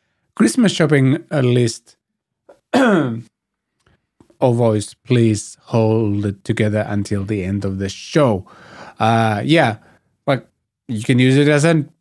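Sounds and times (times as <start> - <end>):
man clearing his throat: 2.5 - 3.3.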